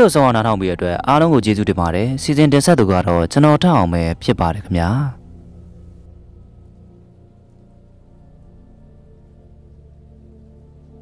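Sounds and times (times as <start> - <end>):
soft ambient music: 0.0 - 11.0.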